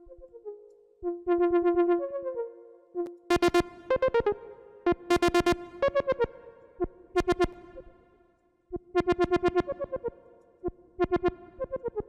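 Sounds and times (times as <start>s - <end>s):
synthesizer arpeggio: 0.0s - 6.5s, 9.0s - 10.2s.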